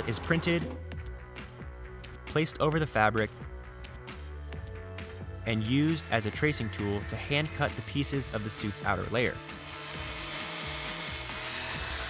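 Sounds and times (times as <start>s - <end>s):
background music: 0.0s - 12.0s
electric fabric cutter running: 5.6s - 12.0s.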